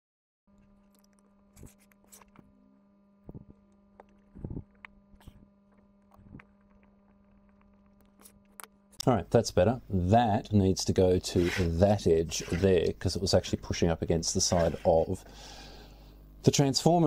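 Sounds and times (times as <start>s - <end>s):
small clicks and scrapes: 0.5s - 2.5s, 3.3s - 8.8s, 11.3s - 13.0s
steady low hum: 0.5s - 17.0s.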